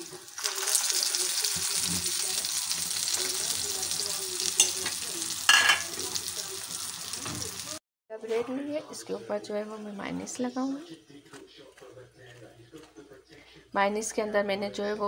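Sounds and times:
kebabs sizzling in frying pan: 0.0s - 7.8s.

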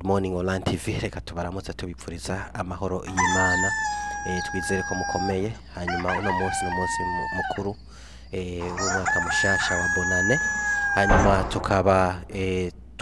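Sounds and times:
man speaking through microphone: 0.0s - 7.8s, 8.4s - 12.7s.

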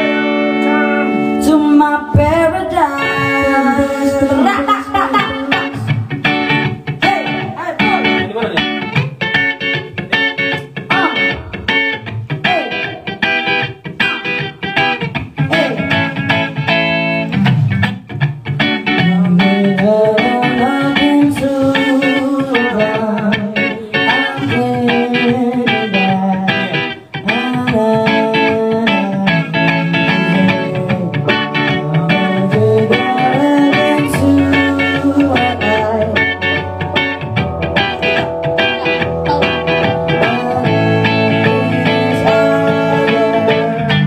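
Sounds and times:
woman singing into a microphone: 0.0s - 6.1s, 19.0s - 36.4s, 40.2s - 44.0s
picked guitar with pitch bends: 0.0s - 44.0s.

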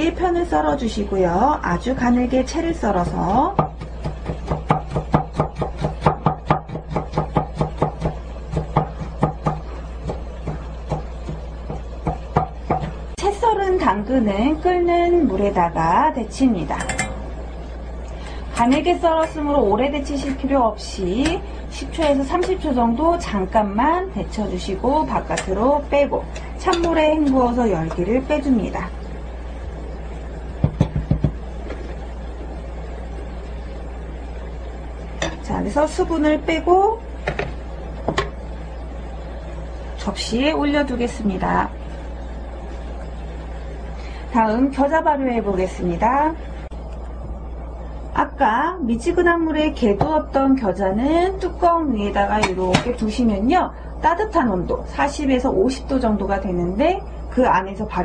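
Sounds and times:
pot of water boiling: 0.0s - 50.0s
steady low hum: 0.0s - 58.0s.

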